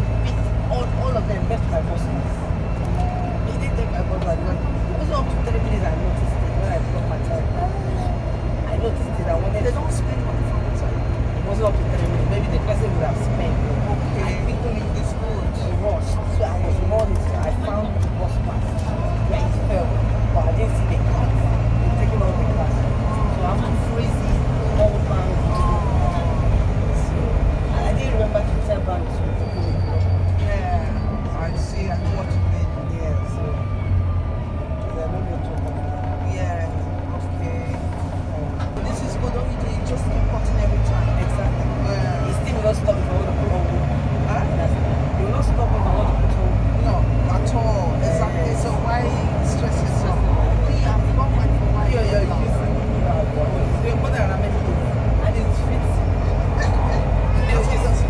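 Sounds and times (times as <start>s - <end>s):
bus diesel engine drone: 0.0s - 58.0s.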